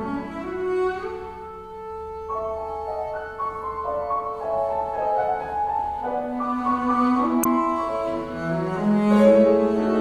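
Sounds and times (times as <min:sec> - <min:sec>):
bowed double bass: 0:00.0 - 0:03.2, 0:04.4 - 0:10.0.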